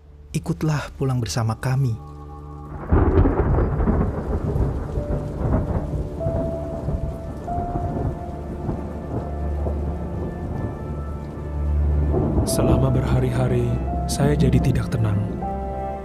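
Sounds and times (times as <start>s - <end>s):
steady rain: 0.1s - 16.0s
thunder rumbling: 2.5s - 16.0s.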